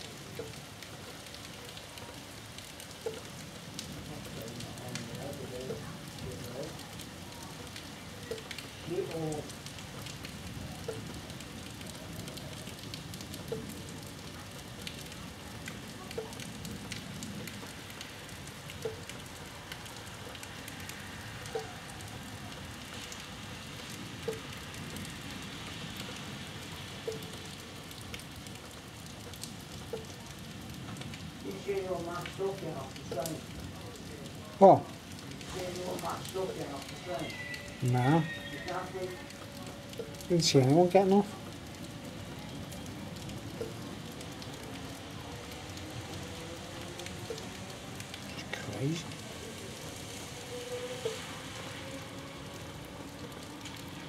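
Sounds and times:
steady rain: 0.0 - 54.0.

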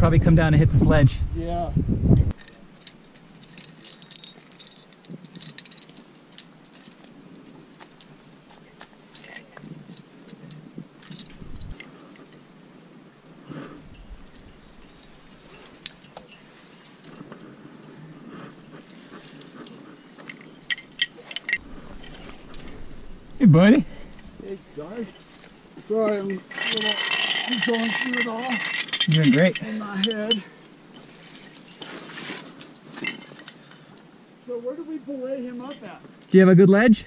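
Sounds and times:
climbing hardware clinking: 2.3 - 34.2.

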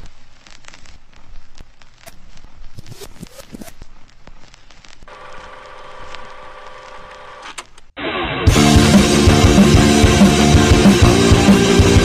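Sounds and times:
rock band playing: 8.4 - 12.0.

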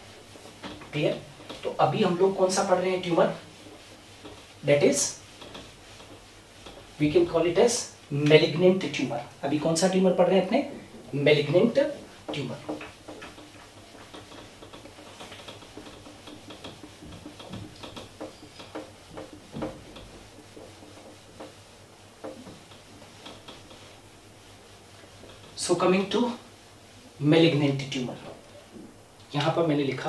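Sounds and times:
eraser scrubbing whiteboard: 0.0 - 28.8
man speaking: 7.0 - 12.7, 29.3 - 30.0
ticks on a whiteboard: 12.2 - 24.0.

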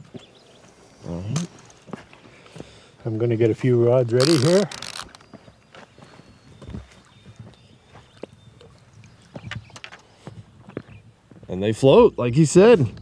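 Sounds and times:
fishing tackle knocks and clicks: 4.2 - 5.2.

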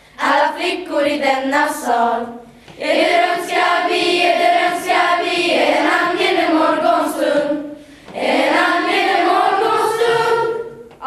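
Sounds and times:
choir of young voices singing: 0.2 - 11.0
breath: 2.5 - 2.8, 7.7 - 8.1.

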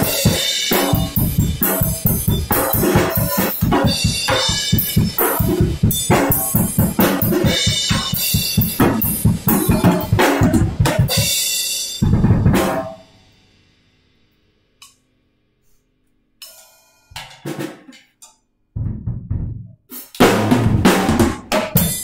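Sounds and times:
acoustic drum kit groove: 0.0 - 13.1, 16.4 - 18.1, 18.8 - 22.0
rapid bass drum strokes: 0.0 - 13.1, 18.8 - 22.0.

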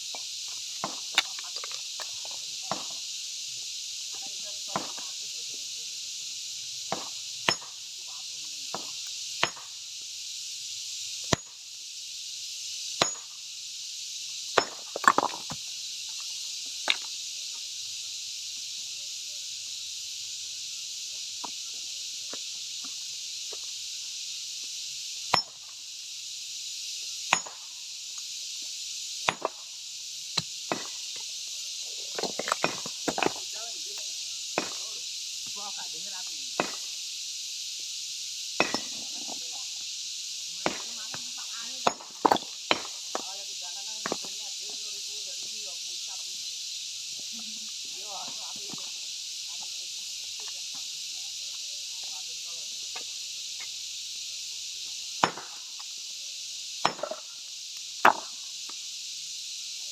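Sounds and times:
iron pry bar striking stone: 2.7 - 3.0, 4.7 - 5.0, 6.9 - 7.8, 8.7 - 9.7, 11.2 - 11.6, 13.0 - 13.4, 14.5 - 15.5, 25.3 - 25.7, 27.3 - 27.7, 29.2 - 29.6, 30.4 - 31.0, 32.2 - 33.4, 34.6 - 34.9, 36.6 - 36.9, 38.6 - 39.0, 40.6 - 40.9, 41.8 - 43.3, 55.2 - 55.6, 56.8 - 57.2, 58.0 - 58.4.

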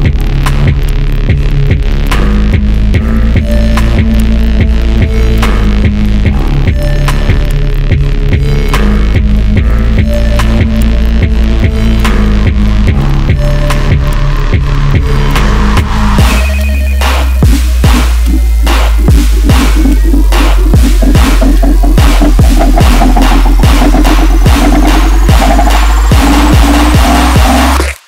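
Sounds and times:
dubstep music with heavy bass: 0.0 - 28.0.

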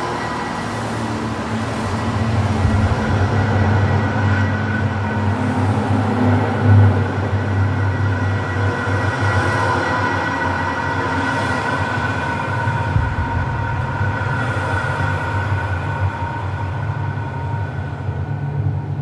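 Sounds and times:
vehicle rumble: 0.0 - 10.1, 11.7 - 19.0
whining tones: 0.0 - 19.0.

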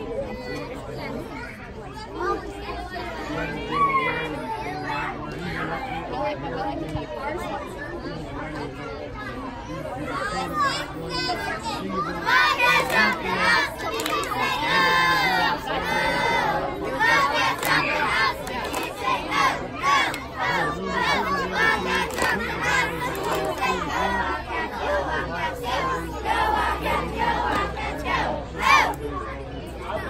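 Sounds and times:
children shouting together: 0.0 - 5.8, 9.0 - 30.0
chatter of many voices: 0.0 - 30.0.

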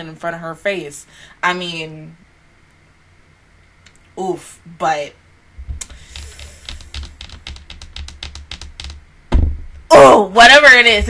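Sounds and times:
keyboard typing: 5.8 - 9.0.

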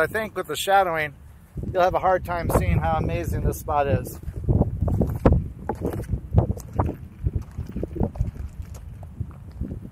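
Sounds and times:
wind buffeting microphone: 0.0 - 9.9
footsteps crunching on gravel: 4.2 - 9.9.

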